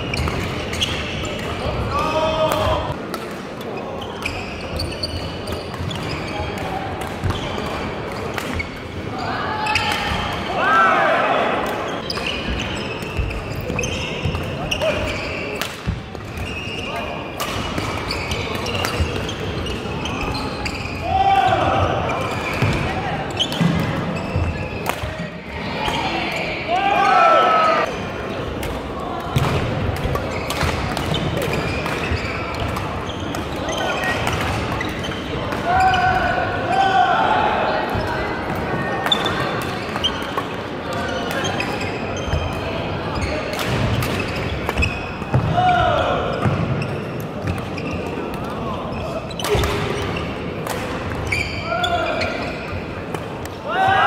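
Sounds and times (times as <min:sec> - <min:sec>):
shoe squeaks on wooden floor: 0:00.0 - 0:01.4, 0:04.0 - 0:06.6, 0:11.9 - 0:15.6, 0:16.3 - 0:17.2, 0:18.0 - 0:21.1, 0:30.2 - 0:34.1, 0:41.0 - 0:42.5, 0:47.7 - 0:48.2, 0:51.2 - 0:52.8
echoing chatter: 0:00.0 - 0:54.0.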